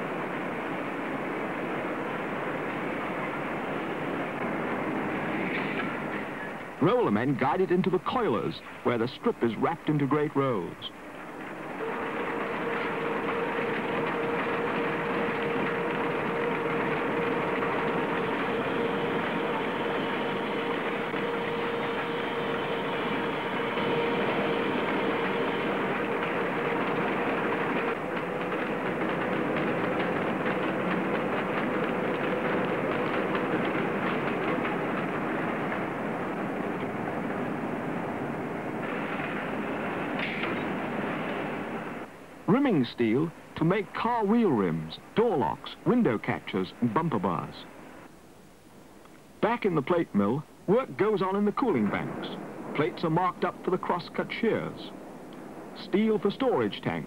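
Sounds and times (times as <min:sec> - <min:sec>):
constant machine hum: 0:00.0 - 0:57.0
steel coiler mechanical rush: 0:11.5 - 0:41.9.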